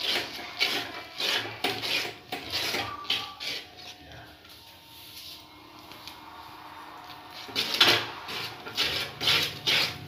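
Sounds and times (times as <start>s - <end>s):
steel spatula scraping iron pan: 0.0s - 4.0s, 7.3s - 10.0s.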